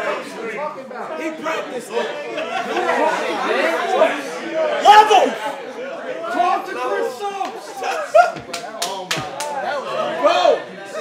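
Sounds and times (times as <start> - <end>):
men chattering: 0.0 - 11.0
man's raised voice: 3.9 - 5.6.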